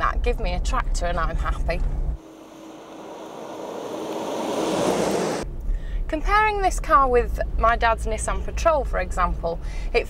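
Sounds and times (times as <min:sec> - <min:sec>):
rushing wind-like noise: 0:02.2 - 0:05.4.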